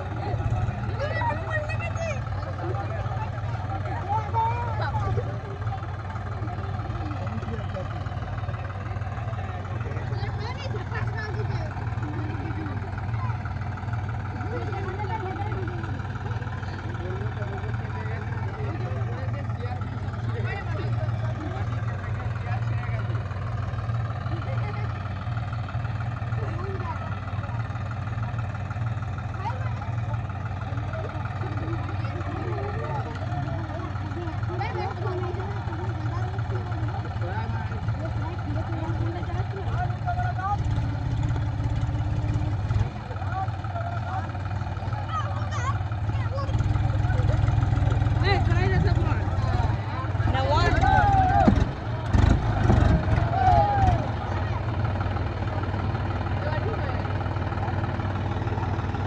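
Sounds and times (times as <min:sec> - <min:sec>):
crowd talking: 0:00.0 - 0:59.0
tractor diesel engine idling: 0:00.0 - 0:59.0.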